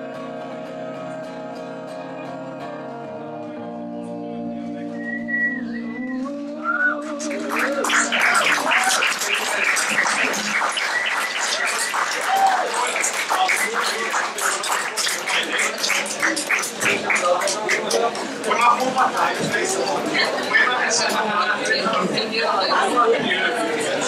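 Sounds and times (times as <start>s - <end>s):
crowd whistling: 5.0s - 6.0s, 6.6s - 14.3s
audience applause: 7.2s - 19.9s.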